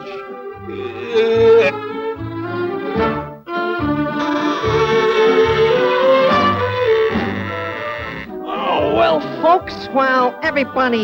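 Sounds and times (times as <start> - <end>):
orchestral music led by brass: 0.0 - 11.0.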